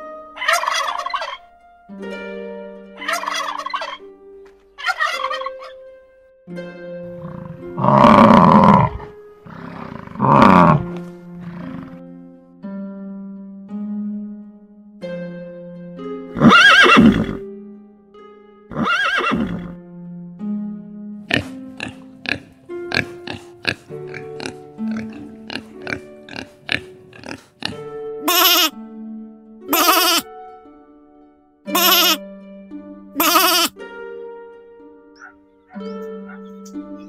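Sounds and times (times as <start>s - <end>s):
music with plucked notes: 0.0s - 37.0s
animal calling loudly: 0.4s - 1.4s, 3.0s - 4.0s, 4.8s - 5.7s, 7.2s - 10.9s, 16.4s - 17.4s, 18.7s - 19.7s, 21.3s - 28.7s, 29.7s - 30.3s, 31.7s - 32.2s, 33.2s - 33.8s, 35.2s - 36.6s.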